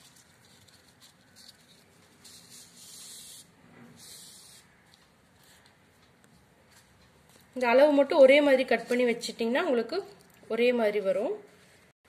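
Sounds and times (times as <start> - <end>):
husk strips rustling: 0.0 - 3.4.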